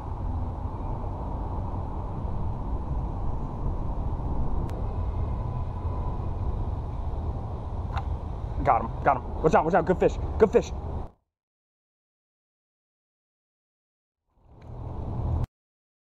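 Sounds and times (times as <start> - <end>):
outdoor background rumble: 0.0 - 11.2, 14.3 - 15.5.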